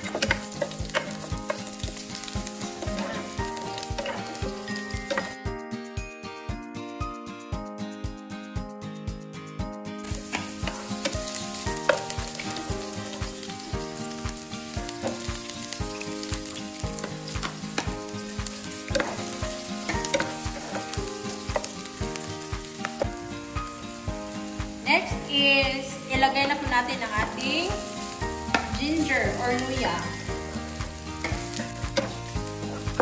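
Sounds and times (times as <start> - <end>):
onion sizzling in hot oil: 0.0 - 5.4, 10.0 - 33.0
background music with steady beat: 0.0 - 33.0.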